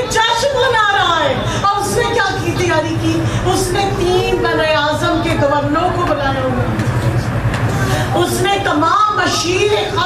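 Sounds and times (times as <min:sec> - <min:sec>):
steady low hum: 0:00.0 - 0:10.0
woman speaking into a microphone: 0:00.0 - 0:10.0.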